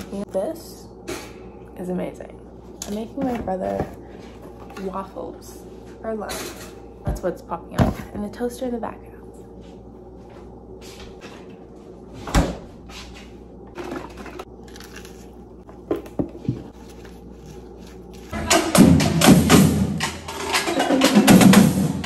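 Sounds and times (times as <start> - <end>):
marching drums playing: 18.3 - 22.0.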